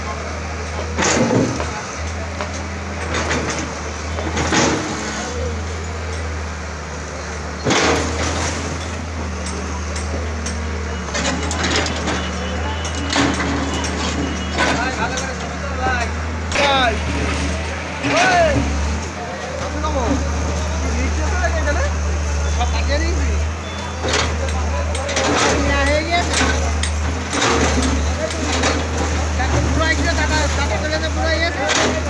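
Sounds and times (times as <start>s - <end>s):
crowd of voices: 0.0s - 32.0s
diesel engine running: 0.0s - 32.0s
masonry crashing: 7.5s - 21.8s, 23.1s - 32.0s.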